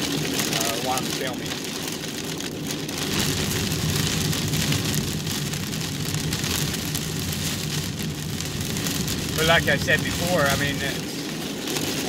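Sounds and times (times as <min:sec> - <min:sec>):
car driving on wet road: 0:00.0 - 0:12.0
rain on car roof: 0:00.0 - 0:12.0.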